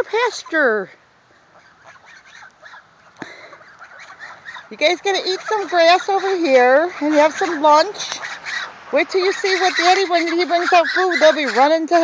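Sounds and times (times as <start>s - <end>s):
geese calling: 0.0s - 12.0s.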